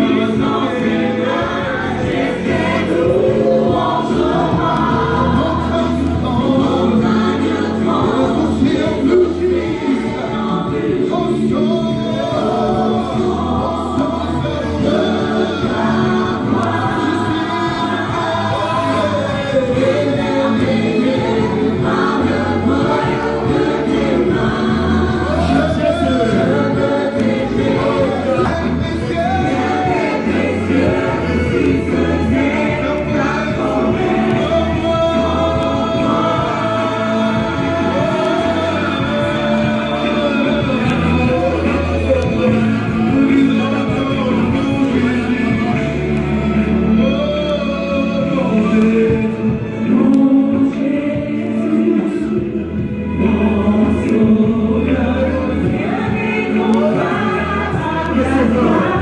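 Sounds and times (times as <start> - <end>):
congregation singing worship song: 0.0 - 59.0.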